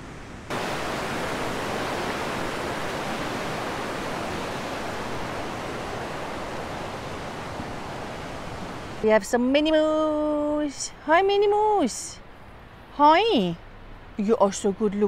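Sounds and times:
river rushing over rocks: 0.5s - 9.1s.

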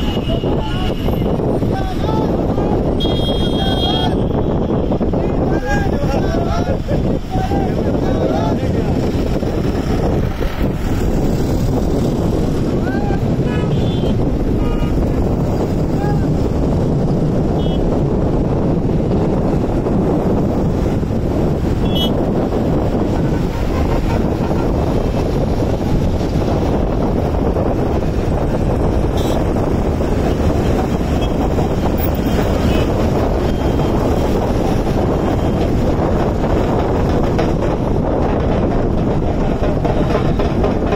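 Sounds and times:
wind buffeting microphone: 0.0s - 40.9s
vehicles driving past on highway: 0.9s - 40.9s.

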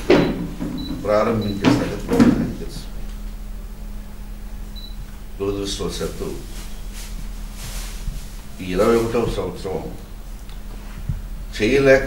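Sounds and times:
steady low hum: 0.0s - 12.0s
man speaking: 1.0s - 3.0s, 5.4s - 6.6s, 8.6s - 10.0s, 11.5s - 12.0s.

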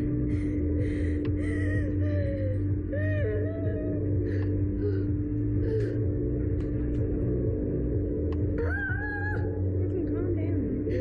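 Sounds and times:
amusement ride rumble: 0.0s - 11.0s
wind rumble: 0.0s - 11.0s.

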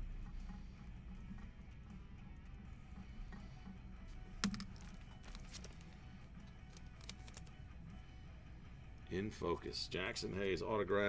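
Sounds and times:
trading cards clicking and tapping: 4.0s - 7.7s.

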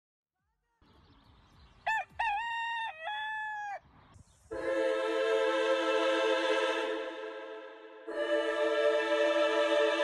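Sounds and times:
rooster crowing: 1.8s - 3.8s.

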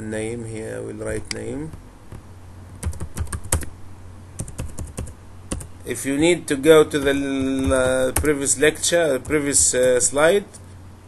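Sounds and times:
keyboard typing clicks: 2.8s - 3.7s, 4.4s - 5.7s, 7.0s - 8.4s.

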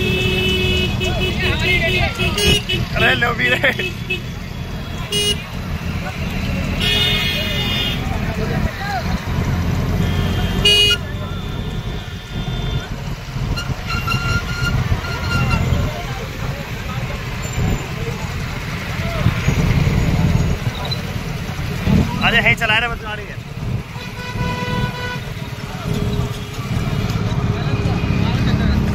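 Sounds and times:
horns honking: 0.0s - 22.0s, 23.8s - 28.6s
motorcycle engines: 0.0s - 28.9s
road rumble: 0.0s - 28.9s.

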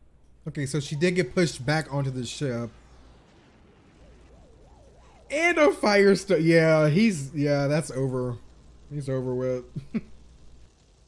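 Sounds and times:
faint warbling tone: 0.5s - 9.4s.

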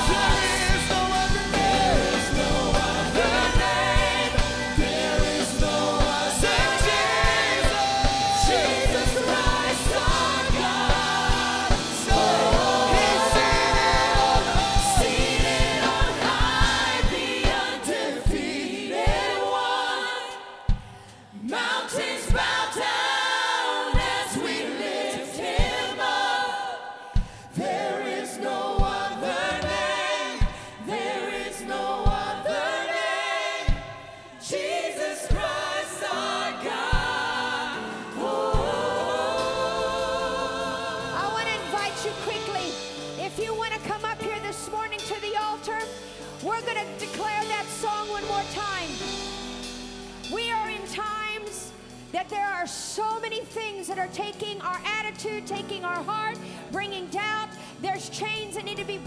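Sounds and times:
kick drum beats: 0.0s - 19.5s, 20.6s - 21.0s, 25.5s - 26.0s, 28.8s - 30.8s, 31.9s - 32.5s, 33.6s - 34.1s
woman singing lead: 0.0s - 19.5s
band accompaniment: 0.0s - 20.2s, 27.3s - 57.2s
backing vocalists: 0.0s - 47.0s.

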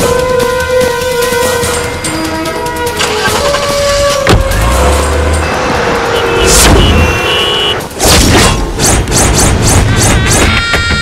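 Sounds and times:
car engine revving and pulling away: 4.4s - 6.2s.

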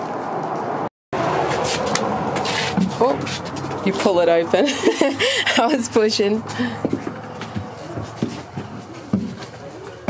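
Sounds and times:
footsteps: 0.0s - 10.0s
murmur of voices: 5.5s - 10.0s.

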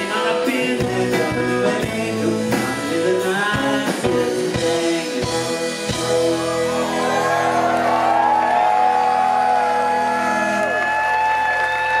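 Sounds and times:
crowd cheering and applauding: 6.0s - 12.0s.

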